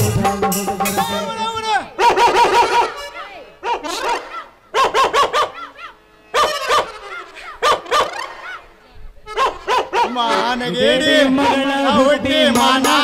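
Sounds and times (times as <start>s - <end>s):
high yelping calls: 2.0s - 8.7s, 9.3s - 10.2s.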